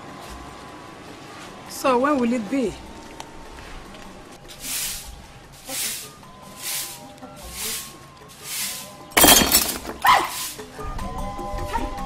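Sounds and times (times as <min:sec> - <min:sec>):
background music with held notes: 0:00.0 - 0:09.2, 0:10.0 - 0:12.0
broom sweeping paved ground: 0:03.6 - 0:10.8.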